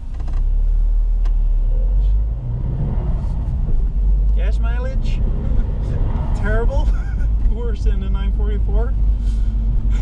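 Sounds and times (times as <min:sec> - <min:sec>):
car engine: 0:00.0 - 0:10.0
road rumble: 0:00.0 - 0:10.0.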